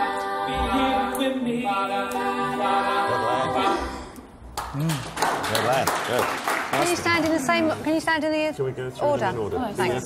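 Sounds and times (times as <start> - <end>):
hand clapping: 4.5 - 7.4.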